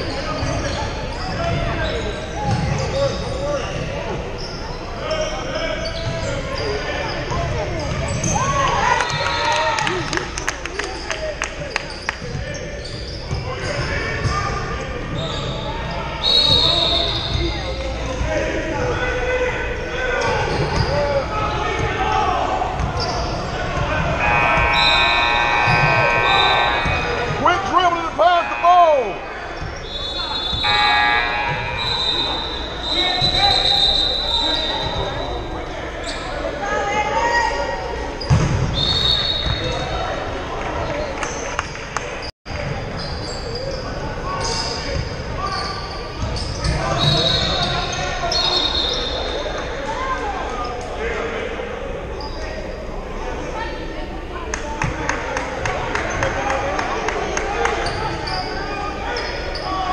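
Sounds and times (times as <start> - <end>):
sneakers squeaking: 0.0 - 41.6, 42.2 - 51.0, 52.0 - 59.9
voices echoing: 0.0 - 59.9.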